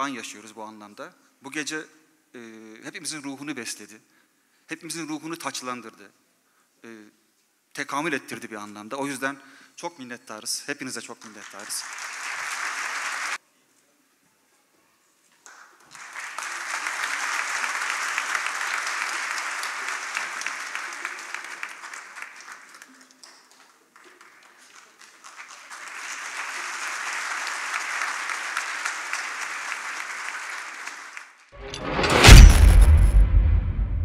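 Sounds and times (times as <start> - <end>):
audience applause: 11.2 - 13.4, 15.8 - 31.4.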